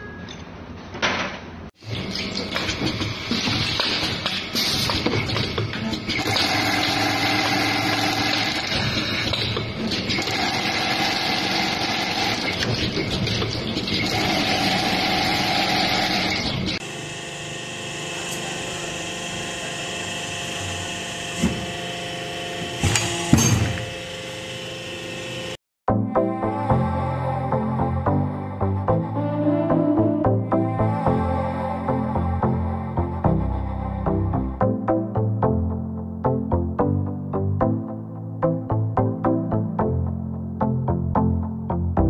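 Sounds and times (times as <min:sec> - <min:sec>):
factory machine running: 0:01.8 - 0:25.6
machine whine: 0:01.8 - 0:25.6.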